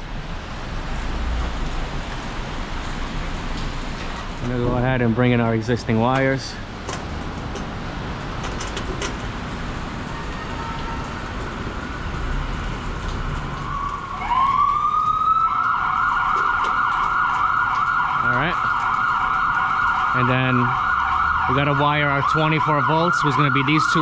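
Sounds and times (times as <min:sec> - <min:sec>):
street noise: 0:00.0 - 0:24.0
emergency vehicle siren wailing: 0:06.1 - 0:24.0.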